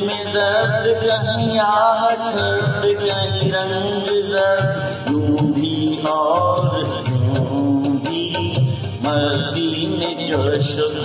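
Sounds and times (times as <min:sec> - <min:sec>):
karaoke backing track with drums: 0:00.0 - 0:11.0
man singing into a microphone: 0:00.0 - 0:11.0.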